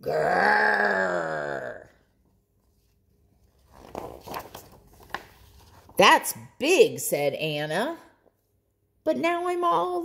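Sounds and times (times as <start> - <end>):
paper rustling: 2.5 - 6.0.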